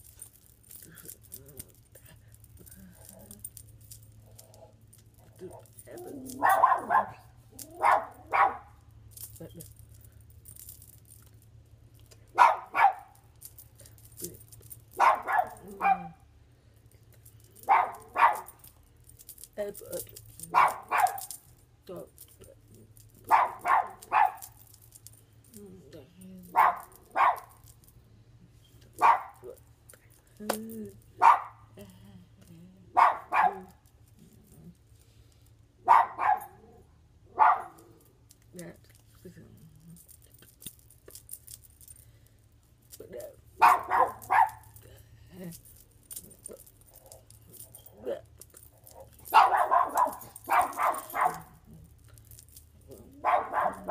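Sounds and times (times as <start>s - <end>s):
faint low hum: 0.0s - 53.9s
dog barking: 6.3s - 8.8s, 12.4s - 13.2s, 15.0s - 16.2s, 17.6s - 18.5s, 20.5s - 21.3s, 23.3s - 24.4s, 26.5s - 27.6s, 29.0s - 29.5s, 31.2s - 31.6s, 32.9s - 33.8s, 35.8s - 36.7s, 37.3s - 37.9s, 43.6s - 44.8s, 49.0s - 51.6s, 53.1s - 53.9s.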